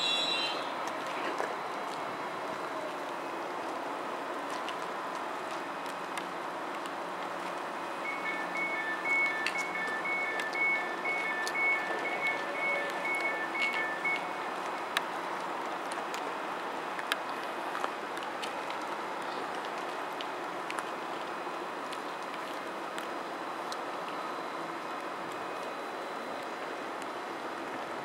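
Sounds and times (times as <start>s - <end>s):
train door warning beeps: 0.0s - 0.7s, 8.0s - 14.6s
train hum: 0.0s - 28.0s.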